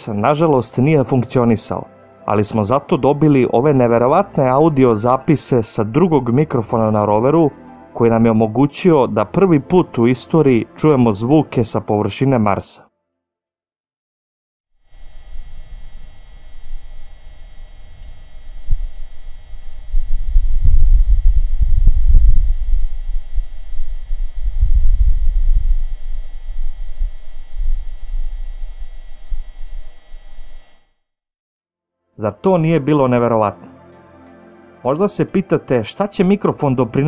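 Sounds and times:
steady rover hum: 14.9s - 30.8s
wind rumble: 18.7s - 29.6s.

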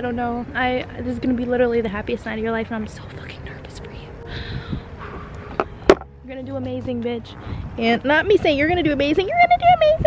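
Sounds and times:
woman whispering: 3.0s - 4.1s.

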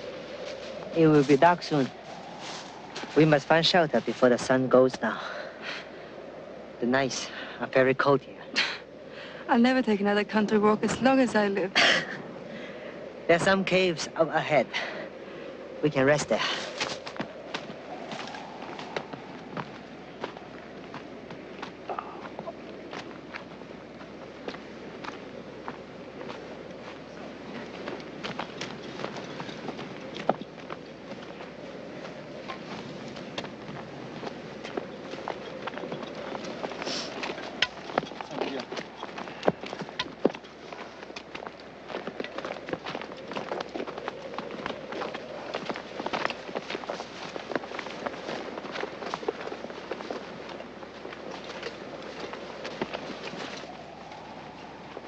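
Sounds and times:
footsteps crunching on gravel: 0.0s - 4.6s, 16.3s - 55.0s.

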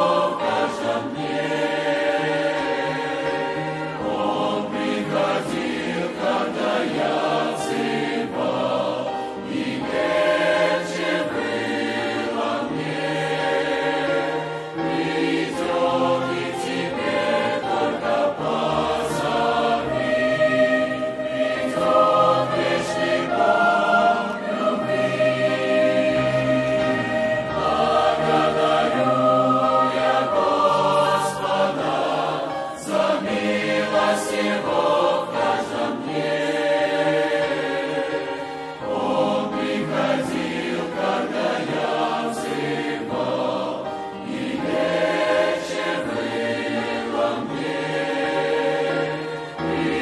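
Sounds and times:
mixed choir singing a hymn: 0.0s - 50.0s.

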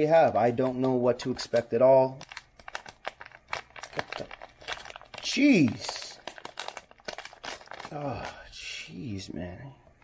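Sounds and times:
foil wrapper crinkling and tearing: 0.3s - 9.0s.

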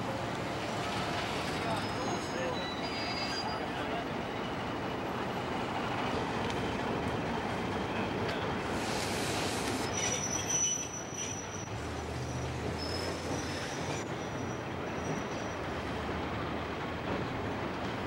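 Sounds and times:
train rolling on rails: 0.0s - 18.0s.

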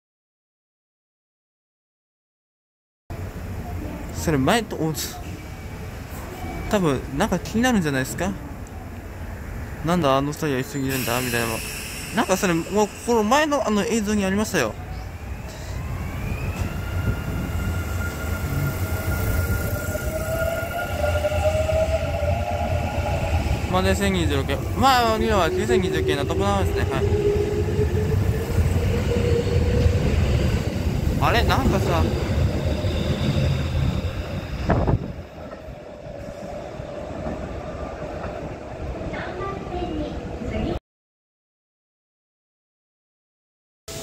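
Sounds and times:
wheels rumbling on rails: 12.4s - 40.8s.

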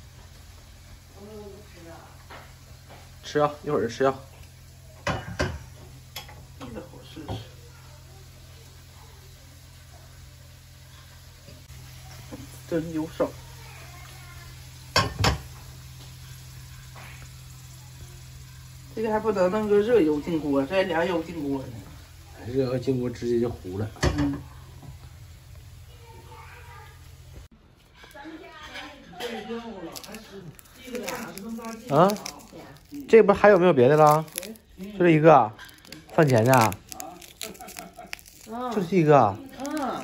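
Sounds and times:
food frying in oil: 0.0s - 40.0s
utensil scraping and knocking wok: 13.5s - 40.0s
woman speaking: 28.0s - 33.1s, 38.5s - 40.0s.

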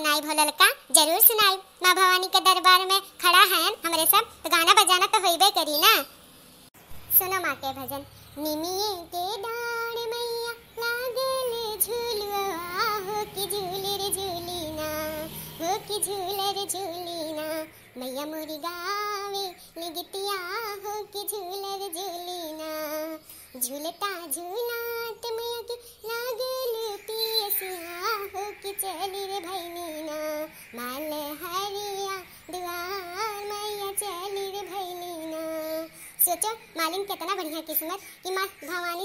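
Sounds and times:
high voice singing unaccompanied: 0.0s - 6.2s, 6.9s - 39.0s.

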